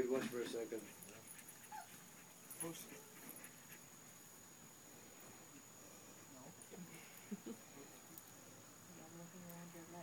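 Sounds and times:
dog whining: 1.6 - 2.1.

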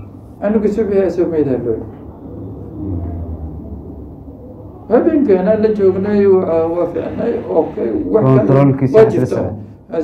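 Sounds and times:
low steady rumble: 0.0 - 8.5.

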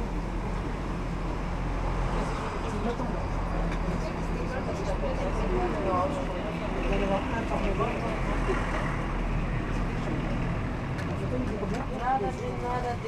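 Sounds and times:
people talking: 2.6 - 8.9, 9.6 - 13.0.

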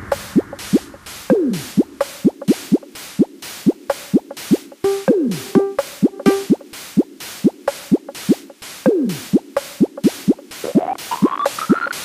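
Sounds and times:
drum machine hi-hats ticking: 0.0 - 12.0
short synth blips: 4.8 - 6.6
held synth notes: 4.8 - 6.7.

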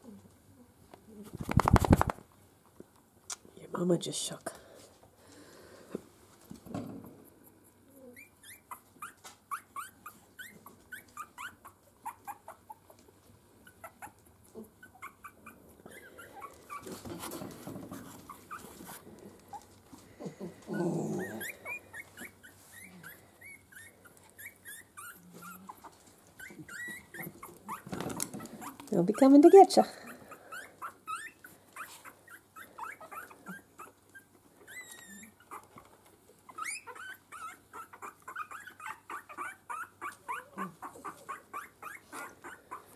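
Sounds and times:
puppies squeaking: 7.5 - 13.0, 13.6 - 42.9.

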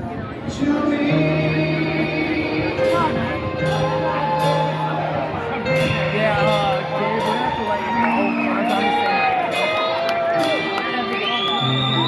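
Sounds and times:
live rock band playing: 1.2 - 12.0.

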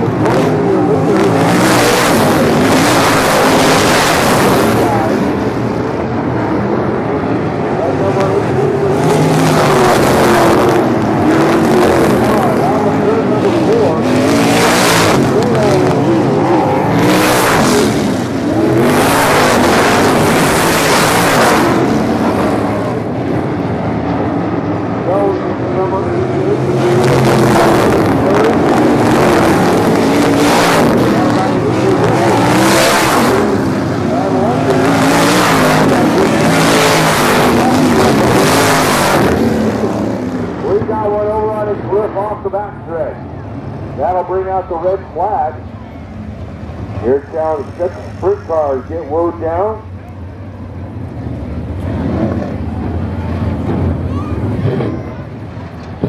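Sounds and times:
cars passing by: 0.0 - 56.0
racing car engines running hard: 0.0 - 56.0.

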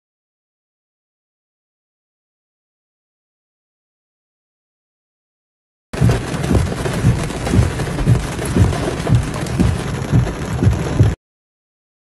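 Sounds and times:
heavy rain pouring: 6.0 - 11.2
low thumps: 6.0 - 11.2.

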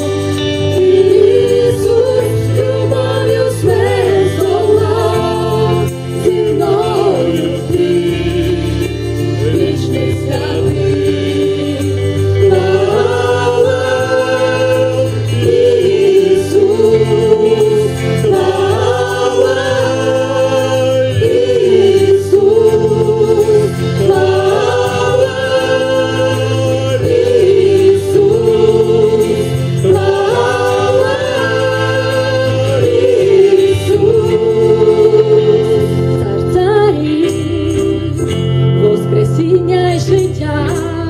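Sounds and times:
guitars: 0.0 - 41.0
steady bass line: 0.0 - 41.0
person singing religious song: 0.8 - 39.6.

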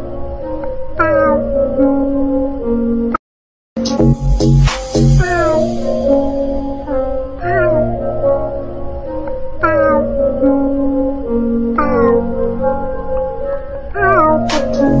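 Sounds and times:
sustained backing music: 3.8 - 15.0.

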